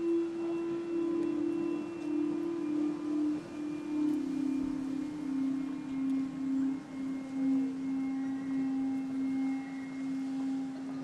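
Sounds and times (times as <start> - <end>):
ambient drone music: 0.0 - 11.0
faint higher tones: 0.0 - 11.0.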